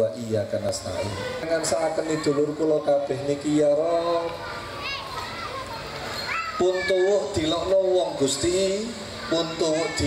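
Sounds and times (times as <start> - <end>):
hubbub of children's voices: 0.0 - 10.0
faint high calls: 4.5 - 7.3
man speaking over pa: 6.6 - 10.0.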